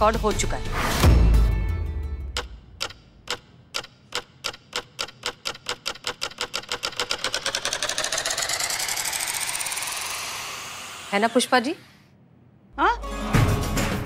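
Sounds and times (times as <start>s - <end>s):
accelerating ticks into rattle: 2.4s - 11.0s.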